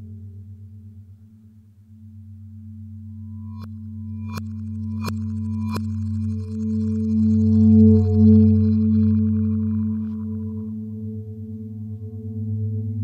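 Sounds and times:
low sustained electronic drone: 0.0s - 13.0s.

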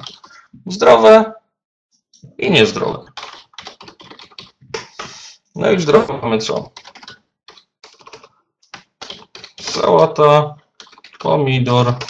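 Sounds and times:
typing on computer keyboard: 0.0s - 0.4s, 2.8s - 5.1s, 6.5s - 9.9s, 10.8s - 12.0s.

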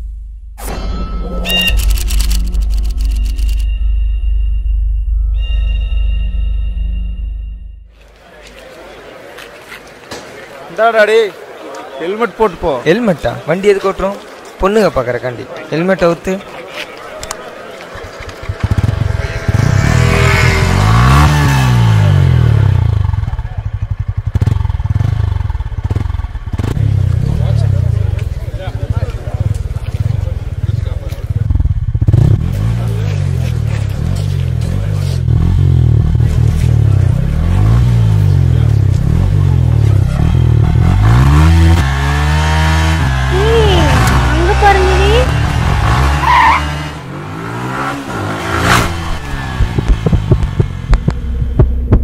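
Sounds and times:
motorcycle engine revving: 17.5s - 52.0s.

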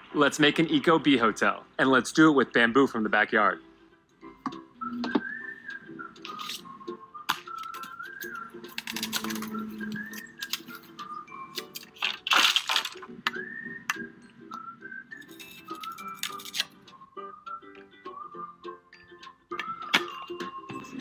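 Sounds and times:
light background music: 0.0s - 21.0s
person whistling a tune: 4.3s - 12.0s, 13.0s - 21.0s
bamboo stem crunching: 6.3s - 6.6s, 7.3s - 13.6s, 15.2s - 16.7s
loppers snapping through bamboo: 7.3s - 10.8s, 11.6s - 13.4s, 15.7s - 16.8s.

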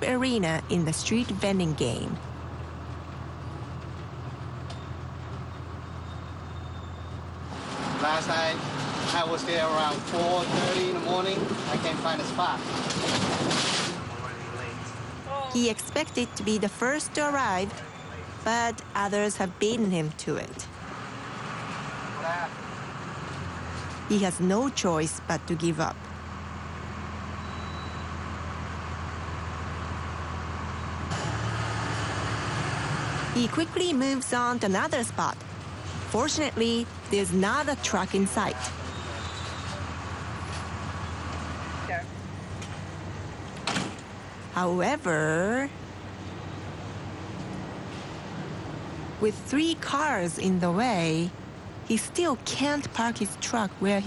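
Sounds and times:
road noise: 0.0s - 54.0s
truck engine droning: 0.0s - 54.0s.

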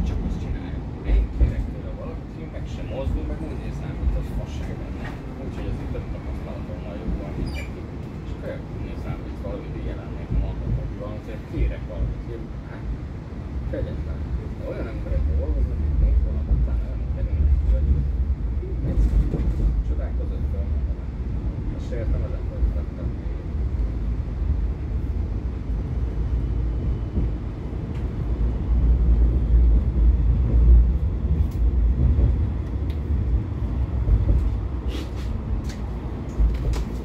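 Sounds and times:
passengers talking faintly: 0.0s - 30.6s
tram wheels rumbling on rail: 0.0s - 37.0s.

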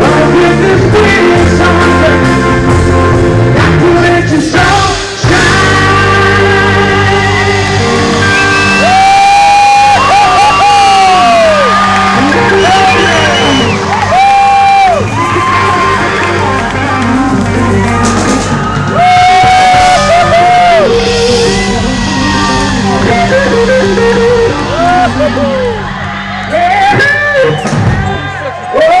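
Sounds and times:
live rock band playing: 0.0s - 29.0s
electric guitar lead: 4.6s - 28.4s
crowd shouting and whooping: 7.7s - 29.0s.

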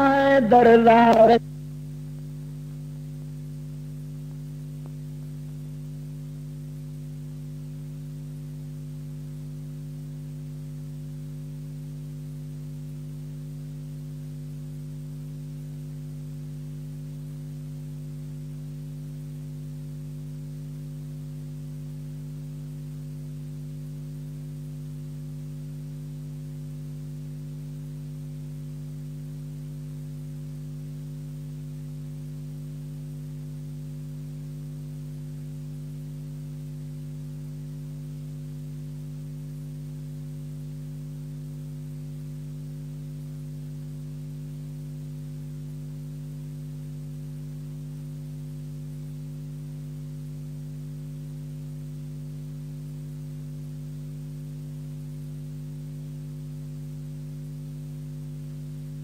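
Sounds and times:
electrical hum: 0.0s - 47.4s.

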